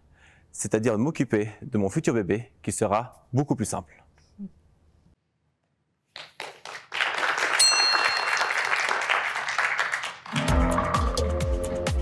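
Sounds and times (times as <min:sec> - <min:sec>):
audience applause: 0:06.2 - 0:11.2
music with a steady beat: 0:10.4 - 0:12.0.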